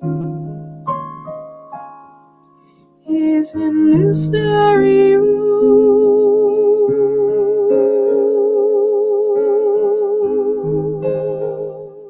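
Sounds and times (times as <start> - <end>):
piano chords: 0.0 - 12.0
woman singing with vibrato: 3.1 - 11.0.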